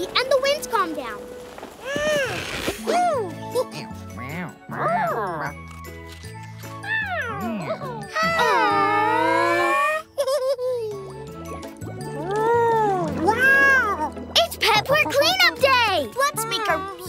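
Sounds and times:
jingly children's music: 0:02.9 - 0:17.0.

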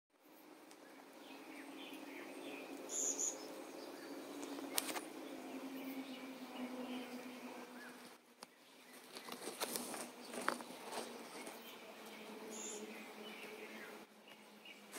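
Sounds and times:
steady low hum: 0:00.2 - 0:14.9
bird chirps: 0:00.8 - 0:14.9.

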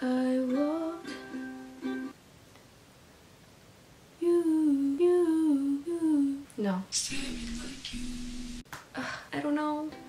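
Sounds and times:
girl humming a melody: 0:00.0 - 0:02.1, 0:04.2 - 0:06.5.

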